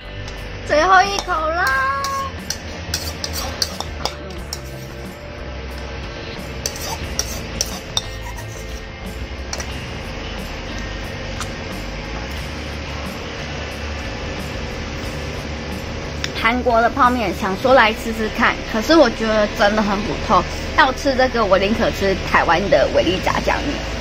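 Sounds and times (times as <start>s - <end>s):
spoon scraping ceramic bowl: 2.0s - 5.1s, 6.6s - 8.9s.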